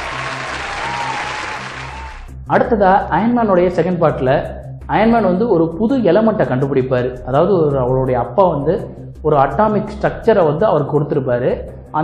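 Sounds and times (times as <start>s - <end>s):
crowd applause and cheering: 0.0s - 2.3s.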